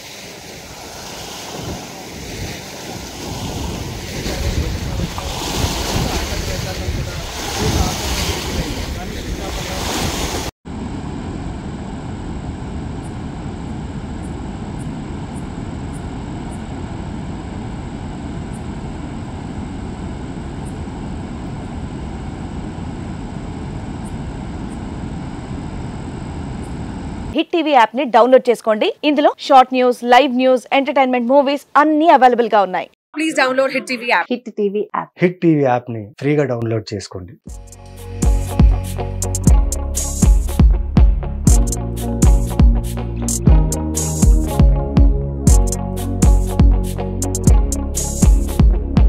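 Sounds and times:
wind buffeting microphone: 0.6s - 27.3s.

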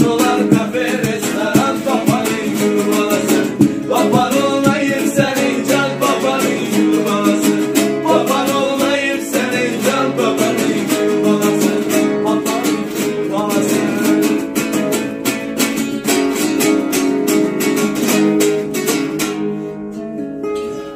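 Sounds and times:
nylon-string guitar strummed chords: 0.0s - 20.9s.

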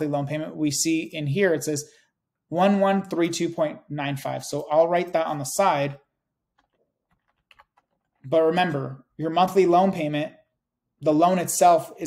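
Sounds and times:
keyboard typing: 6.4s - 8.3s.

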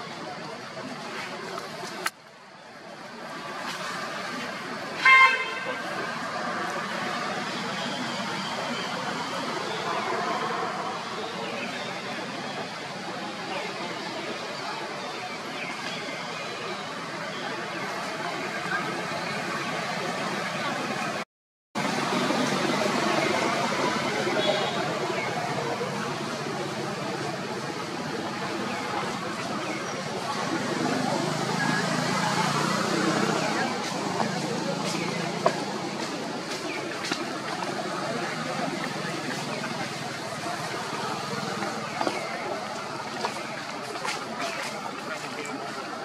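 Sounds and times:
outdoor background noise: 0.0s - 21.2s, 21.8s - 46.0s
indistinct voices: 21.8s - 46.0s.

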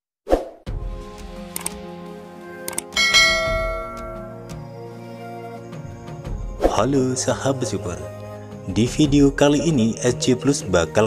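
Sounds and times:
soft background music: 0.7s - 11.0s
bell-like chime: 3.0s - 4.5s.

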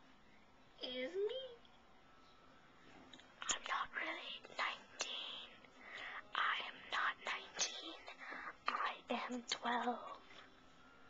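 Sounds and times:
person whispering: 3.4s - 10.2s.

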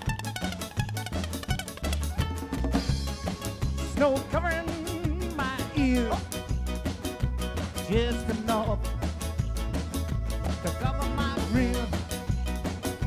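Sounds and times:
acoustic guitar: 0.0s - 13.0s
congas: 0.0s - 13.0s
drum kit: 0.0s - 13.0s
upright bass: 0.0s - 13.0s
person singing melody: 3.7s - 6.4s, 7.8s - 9.0s, 10.5s - 13.0s.

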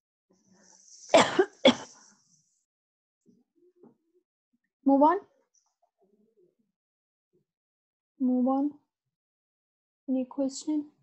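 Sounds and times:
woman clearing her throat: 1.2s - 1.9s.

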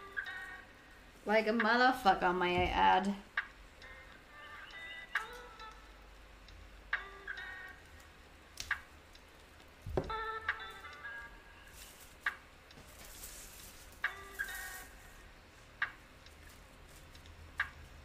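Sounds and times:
rustle: 11.7s - 15.1s.

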